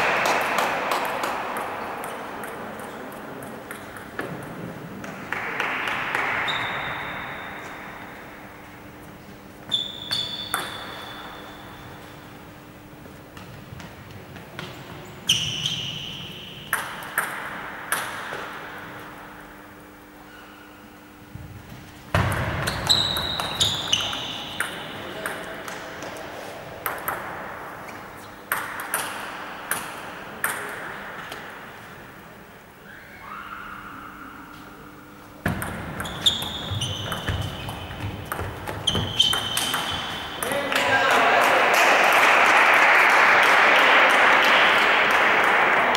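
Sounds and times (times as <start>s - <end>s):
table tennis ball knocks: 35.4s - 36.1s.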